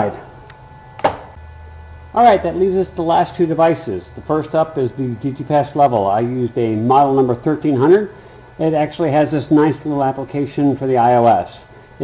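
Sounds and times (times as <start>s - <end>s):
low steady hum: 0.0s - 12.0s
short knock: 1.0s - 1.4s.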